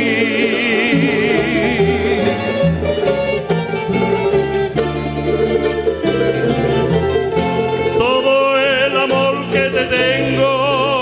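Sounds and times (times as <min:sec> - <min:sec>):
person singing with vibrato: 0:00.0 - 0:02.8, 0:07.9 - 0:11.0
folk string ensemble strumming: 0:00.0 - 0:11.0.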